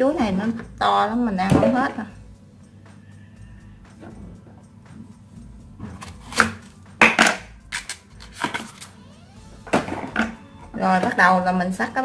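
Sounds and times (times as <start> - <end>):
knife chopping on wooden board: 5.8 - 7.4.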